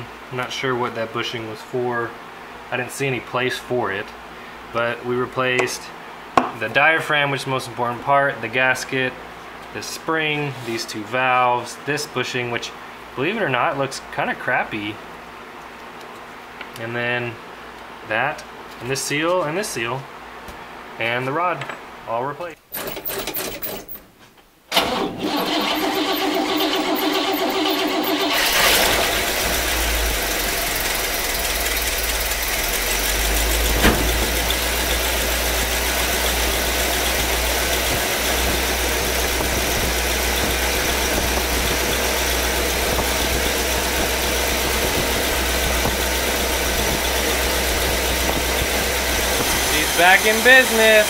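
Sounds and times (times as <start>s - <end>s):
car engine cranking and idling: 24.7s - 51.0s.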